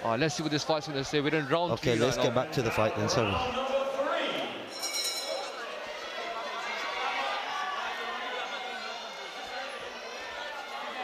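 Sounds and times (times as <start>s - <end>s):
crowd talking and calling out: 0.0s - 11.0s
boxing ring bell: 4.7s - 5.6s.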